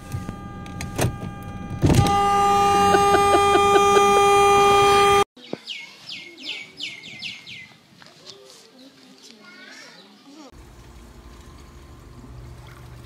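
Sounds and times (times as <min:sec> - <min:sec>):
car horn blast: 0:00.1 - 0:05.3.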